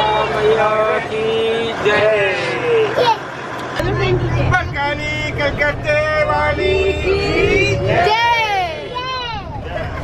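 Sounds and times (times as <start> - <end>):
bus engine drone: 0.0 - 10.0
passengers singing: 0.0 - 10.0.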